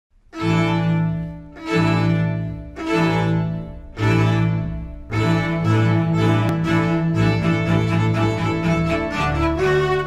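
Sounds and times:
low bowed string notes: 0:00.3 - 0:10.0.

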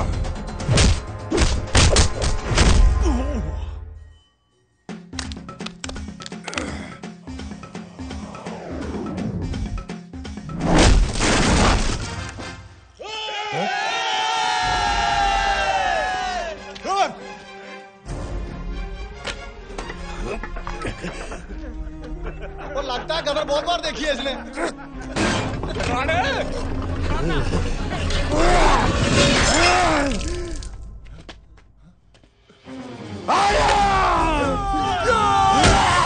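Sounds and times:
men yelling battle cry: 0:13.0 - 0:16.6, 0:28.2 - 0:30.2, 0:33.2 - 0:36.0
loud crashing and shattering: 0:28.2 - 0:30.2
man wailing in pain: 0:33.3 - 0:36.0.

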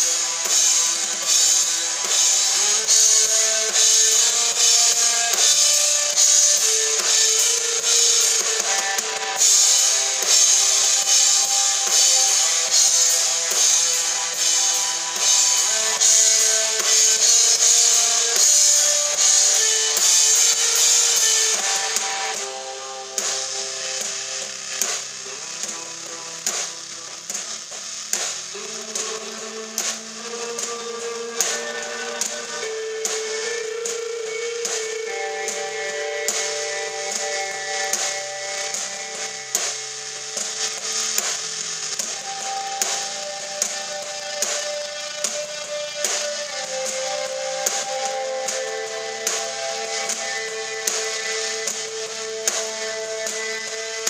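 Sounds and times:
drum kit beat: 0:00.0 - 0:54.0
electric guitar chords: 0:00.0 - 0:54.0.

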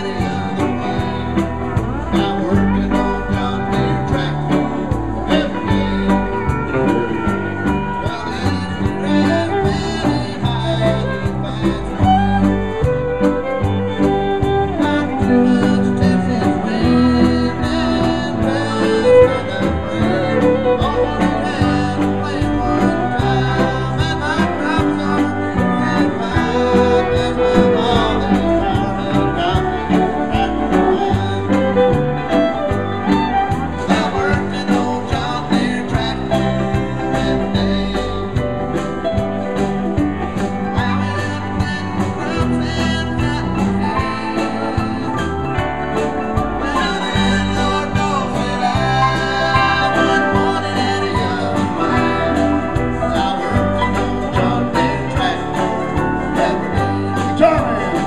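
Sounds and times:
fiddle: 0:00.0 - 0:58.0
guitar: 0:00.0 - 0:58.0
man singing: 0:00.0 - 0:58.0
mandolin: 0:00.0 - 0:58.0
steel guitar: 0:00.0 - 0:58.0.

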